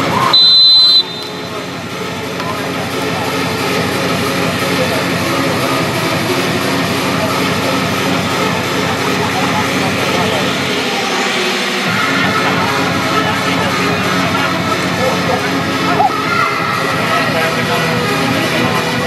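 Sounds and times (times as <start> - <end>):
loud engine drone: 0.0 - 16.0
indistinct voices: 0.0 - 19.0.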